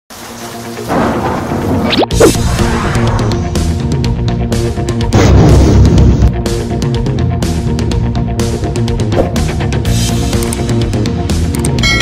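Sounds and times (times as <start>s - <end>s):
rain: 0.1s - 2.0s
rumbling thunder: 0.9s - 1.8s.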